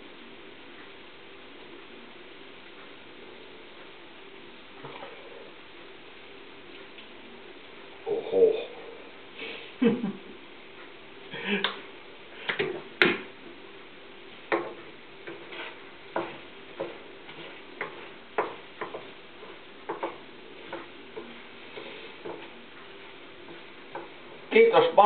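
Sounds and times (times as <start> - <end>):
spatula scraping frying pan: 14.7 - 22.4.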